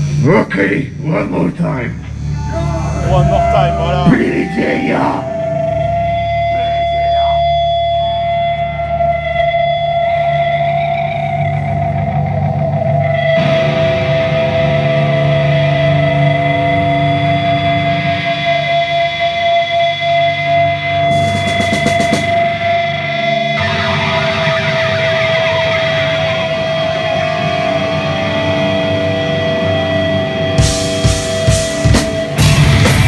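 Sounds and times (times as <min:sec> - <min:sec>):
black metal band playing live: 0:00.0 - 0:33.0
guitars and bass droning note: 0:00.0 - 0:33.0.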